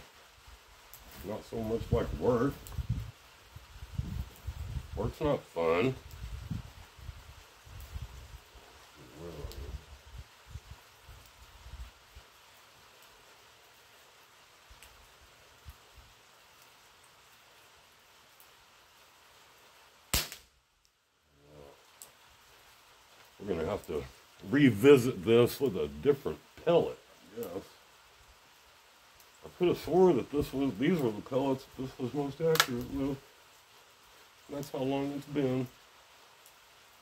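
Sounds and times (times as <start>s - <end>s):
faint low rumbles: 0.9s - 12.0s
air rifle shot: 20.1s - 20.5s.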